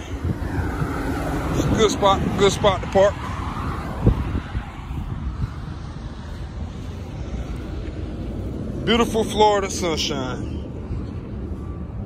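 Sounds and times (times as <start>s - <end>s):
car passing close by: 0.0s - 9.4s
steady traffic rumble: 0.0s - 12.0s.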